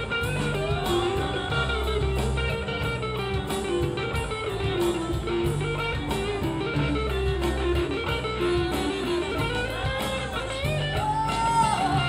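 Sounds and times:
guitars: 0.0 - 12.0
live rock band playing: 0.0 - 12.0
steady drum beat: 0.0 - 12.0.

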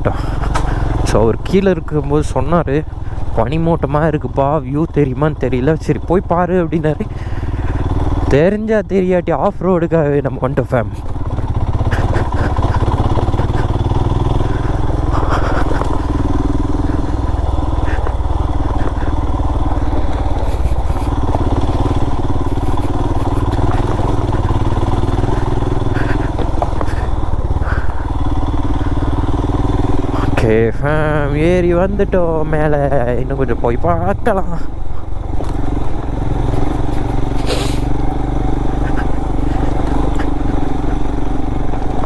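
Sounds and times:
motorcycle engine running: 0.0 - 42.0.

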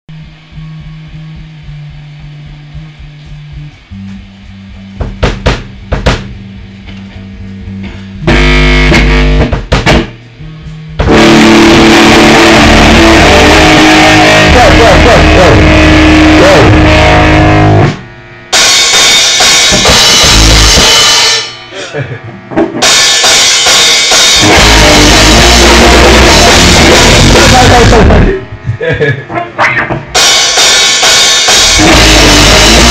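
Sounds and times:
drum kit: 0.1 - 32.9
electric guitar: 5.0 - 10.3, 11.0 - 32.9.

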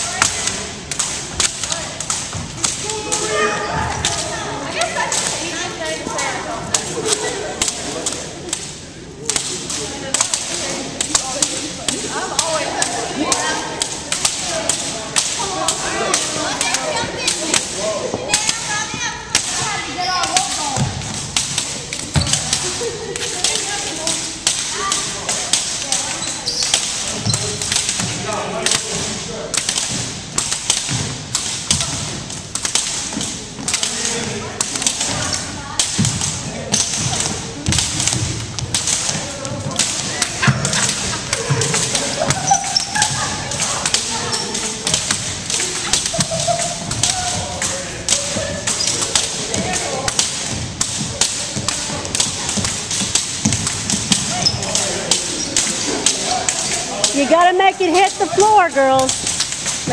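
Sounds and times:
jump ropes slapping floor: 0.0 - 59.9
feet thumping gym floor: 11.1 - 24.1, 29.6 - 59.9.

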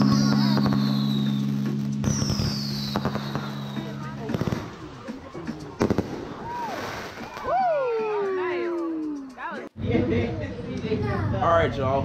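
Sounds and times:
firework whistles falling in pitch: 0.0 - 4.0
fireworks popping and crackling: 0.0 - 7.7
background music: 0.0 - 12.0.

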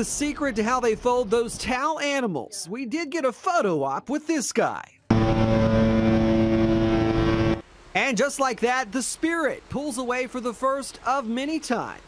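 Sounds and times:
ship horn deep blast: 5.1 - 7.6.

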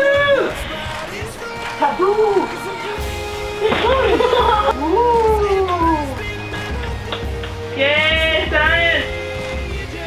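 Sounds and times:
background music: 0.0 - 10.0
young woman laughing: 3.6 - 4.9.

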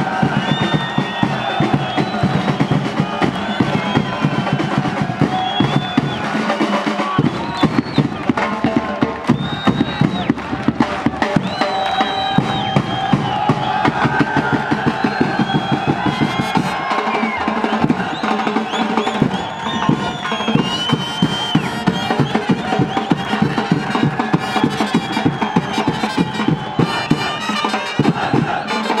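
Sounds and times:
fast drumming: 0.0 - 29.0.

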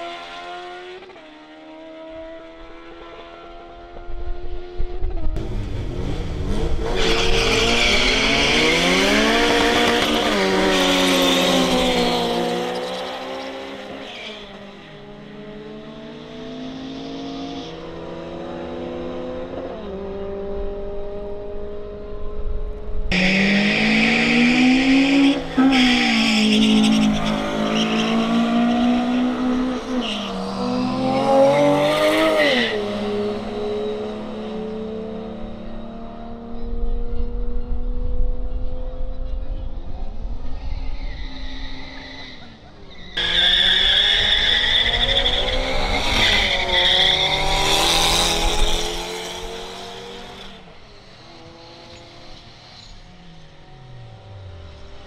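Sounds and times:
racing cars accelerating: 0.0 - 22.4, 23.1 - 55.0
motorcycles accelerating: 0.0 - 40.4, 42.4 - 55.0.

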